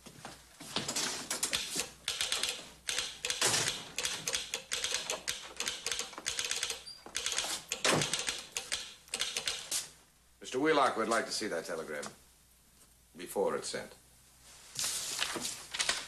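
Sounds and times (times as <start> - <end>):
telegraph sounder clicking: 1.5 - 9.7.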